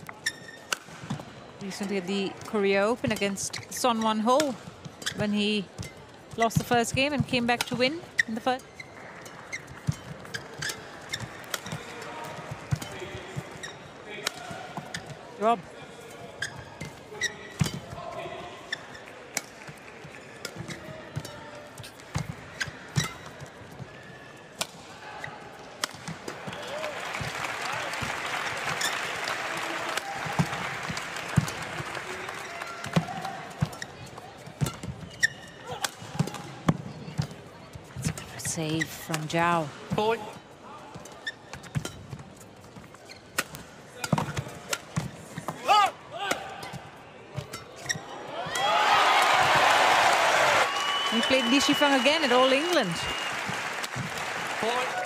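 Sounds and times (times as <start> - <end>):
shoe squeaks on court: 0.0 - 0.8, 5.0 - 14.0, 16.1 - 19.3, 20.2 - 24.4, 28.7 - 29.1, 32.4 - 35.8, 41.0 - 44.8, 47.4 - 48.2
crowd applause: 26.4 - 32.8, 48.7 - 55.0.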